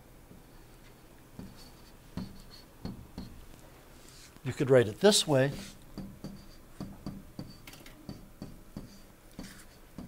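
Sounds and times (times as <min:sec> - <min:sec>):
stylus scratching on tablet: 0:00.9 - 0:03.4, 0:05.1 - 0:08.2, 0:08.8 - 0:10.0.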